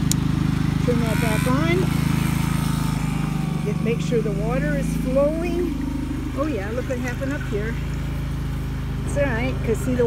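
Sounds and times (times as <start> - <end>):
water pump motor humming: 0.0 - 10.0.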